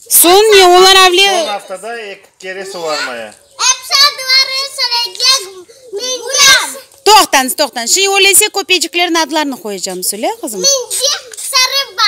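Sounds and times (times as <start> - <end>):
young children speaking: 2.6 - 7.0, 10.4 - 12.0.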